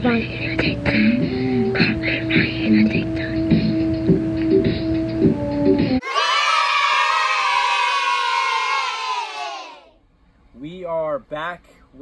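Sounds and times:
crowd cheering and shouting: 0:06.0 - 0:09.9.

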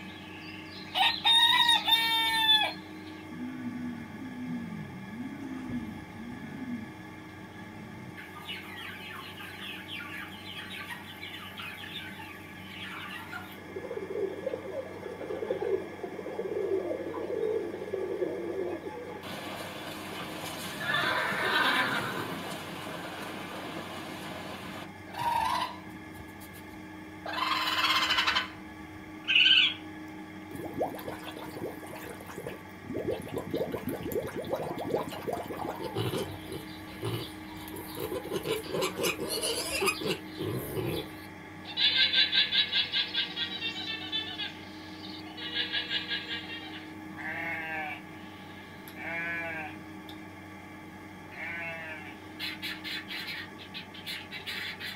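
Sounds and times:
animal calls: 0:08.1 - 0:25.8, 0:27.2 - 0:28.6, 0:33.2 - 0:44.6
short loud animal calls: 0:20.8 - 0:22.5.

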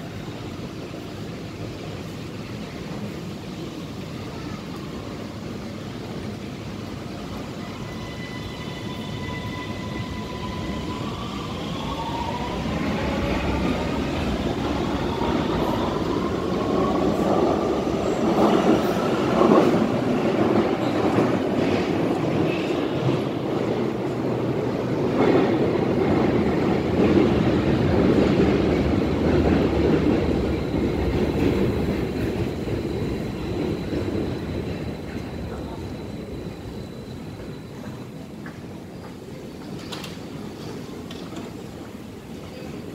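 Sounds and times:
train rolling rumble: 0:00.0 - 0:42.9.

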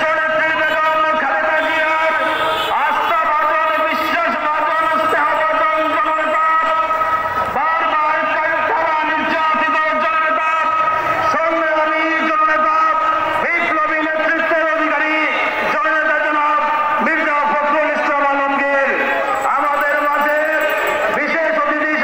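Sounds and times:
man's voice over loudspeaker: 0:00.0 - 0:22.0.

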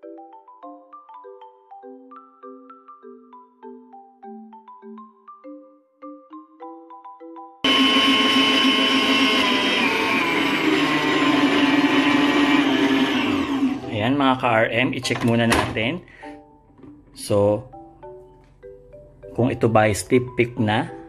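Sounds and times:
mallet percussion music: 0:00.0 - 0:07.7, 0:17.7 - 0:21.0
stand mixer motor whisking: 0:07.7 - 0:14.0.

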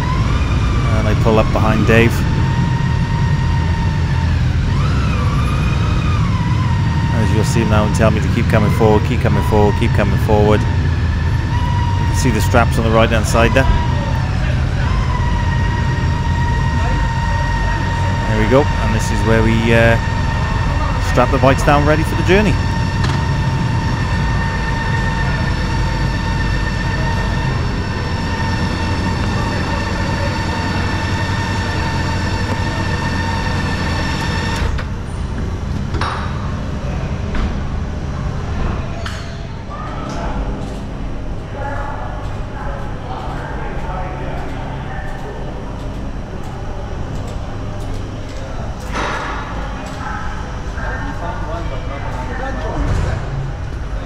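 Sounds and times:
voices: 0:00.0 - 0:35.7, 0:36.5 - 0:54.0.

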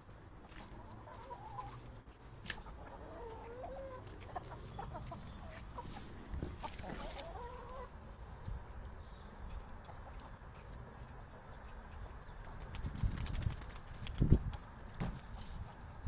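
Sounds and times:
chickens clucking: 0:00.4 - 0:08.0
chicken wavering calls: 0:00.6 - 0:01.9, 0:02.6 - 0:08.0.

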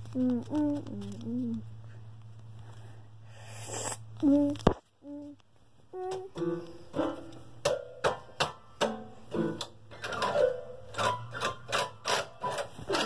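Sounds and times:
rhythmic clicking taps: 0:06.0 - 0:12.6.

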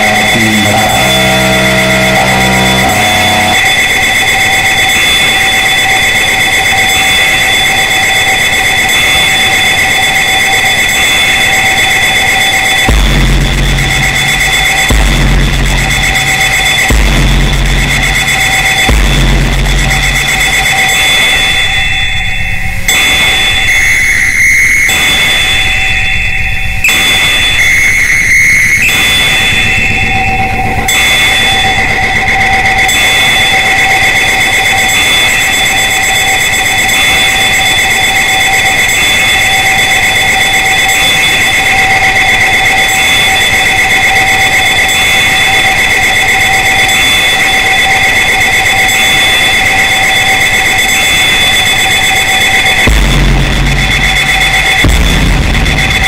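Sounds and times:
pulsing bass: 0:00.0 - 0:03.7, 0:12.9 - 0:20.9, 0:28.9 - 0:34.4, 0:52.8 - 0:56.0
high steady synth tones: 0:00.0 - 0:56.0.

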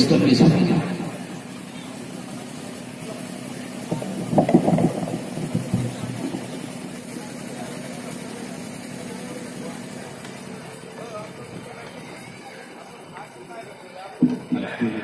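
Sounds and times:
steady low hum: 0:00.0 - 0:11.8
burst of voices: 0:00.0 - 0:15.0.

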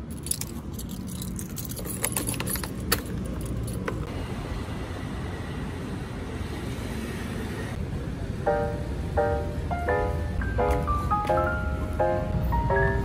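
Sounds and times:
keys jangling: 0:00.0 - 0:04.0
key clicking into ignition lock: 0:00.1 - 0:04.0.

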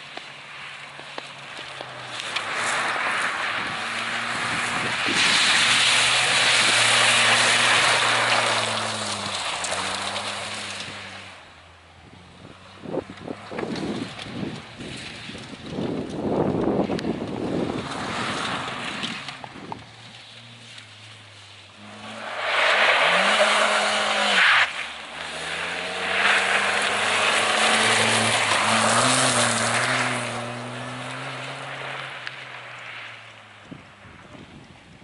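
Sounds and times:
tyres on gravel: 0:00.0 - 0:35.0
wind buffeting microphone: 0:03.6 - 0:05.7, 0:12.4 - 0:18.4
race car engine revving: 0:21.7 - 0:32.5.

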